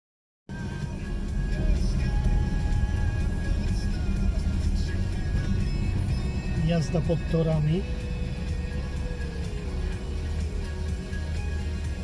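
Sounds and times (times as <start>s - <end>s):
music playing: 0.5s - 12.0s.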